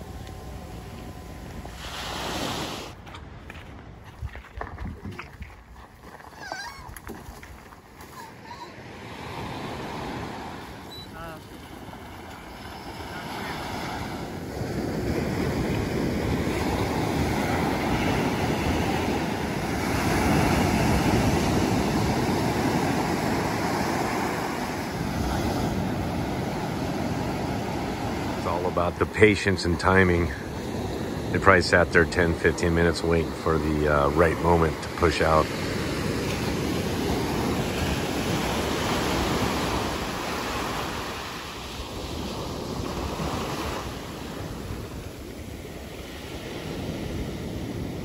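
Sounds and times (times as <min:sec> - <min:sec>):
ocean surf washing on beach: 0:00.0 - 0:03.0, 0:07.8 - 0:48.0
wind on microphone: 0:00.0 - 0:05.7.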